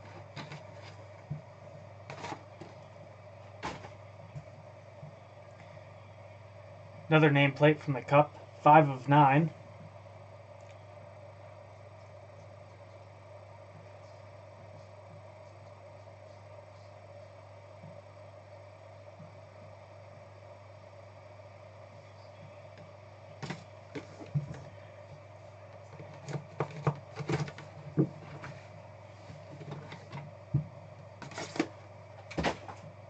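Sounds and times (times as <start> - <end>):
steady low hum: 0.0 - 33.0.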